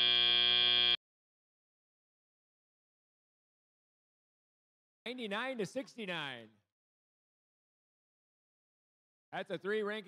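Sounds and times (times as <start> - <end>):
harsh buzzer tone: 0.0 - 1.0.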